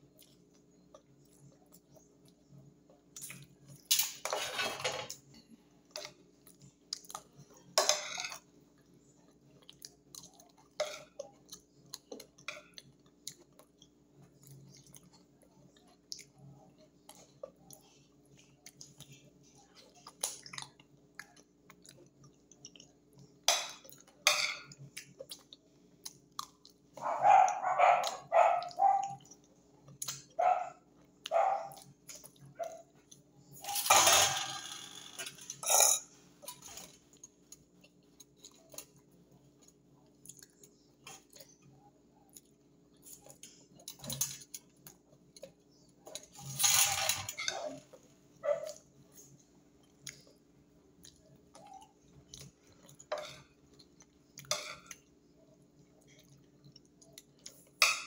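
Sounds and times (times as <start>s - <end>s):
person chewing: 0.0s - 3.9s, 5.9s - 7.8s, 8.8s - 33.6s, 36.4s - 46.6s, 48.7s - 57.8s.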